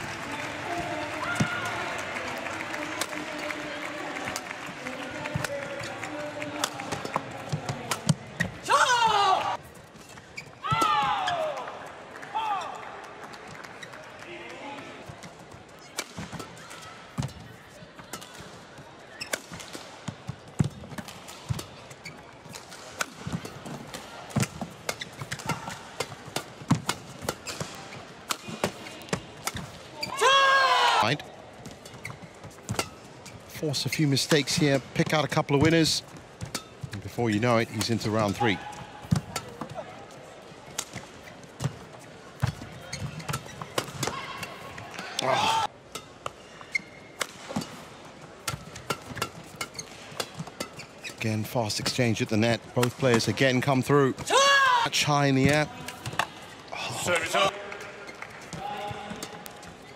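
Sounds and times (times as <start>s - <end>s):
crowd noise: 0.0s - 59.9s.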